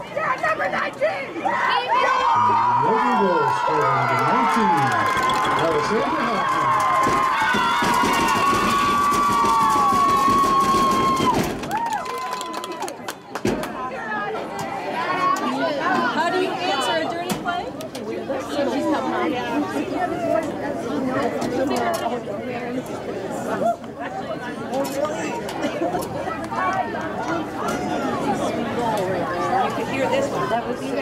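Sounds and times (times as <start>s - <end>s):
spectators shouting and cheering: 0.0s - 17.2s.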